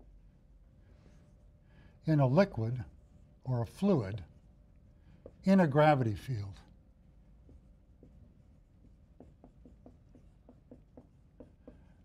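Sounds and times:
marker writing on whiteboard: 4.3s - 5.7s, 7.1s - 12.0s.

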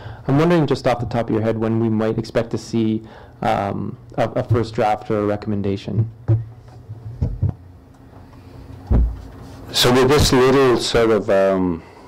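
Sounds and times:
faint steady hum: 0.0s - 12.0s
hand knocking on table: 6.0s - 6.5s.

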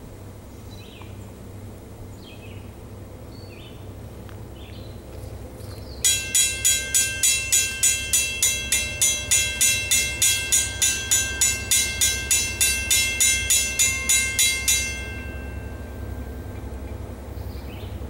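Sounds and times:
crossing bell ringing: 6.0s - 18.0s.

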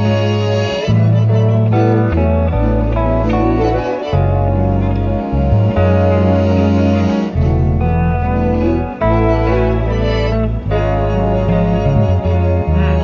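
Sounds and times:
alto saxophone: 0.0s - 13.0s
electric bass notes: 0.0s - 13.0s
electric guitar tones: 0.0s - 13.0s.

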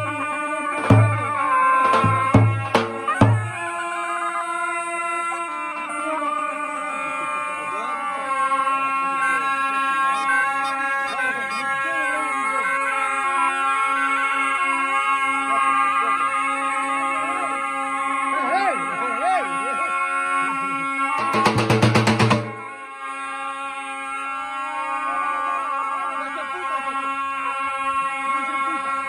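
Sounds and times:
ornamented shawm melody: 0.0s - 29.0s
reedy shawm drone: 0.0s - 29.0s.

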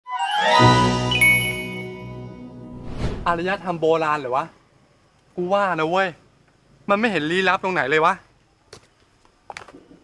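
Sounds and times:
chiming musical logo sting: 1.1s - 2.4s.

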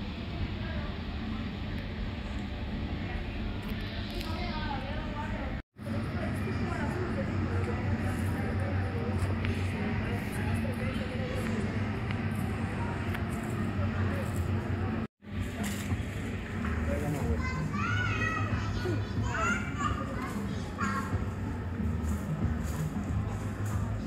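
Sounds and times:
steady low rumble: 0.0s - 24.0s
children calling and shouting: 16.7s - 22.6s.

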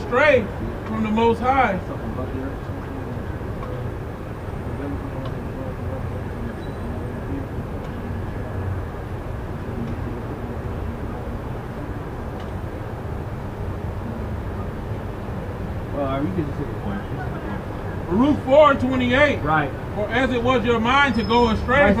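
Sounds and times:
city street traffic rumble: 0.0s - 22.0s
faint voices: 0.0s - 22.0s.

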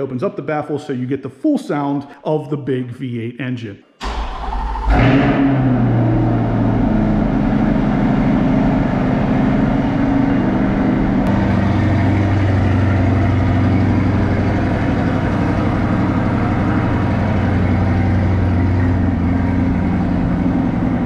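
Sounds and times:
car engine idling: 4.0s - 21.0s.

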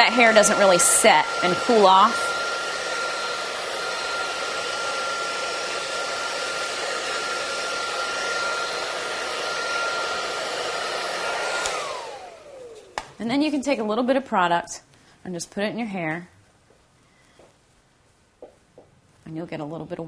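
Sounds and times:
hair dryer blowing: 0.0s - 13.8s.

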